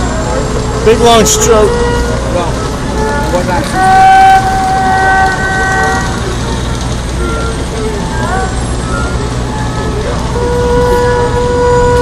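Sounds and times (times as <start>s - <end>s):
bowed erhu notes: 0.0s - 12.0s.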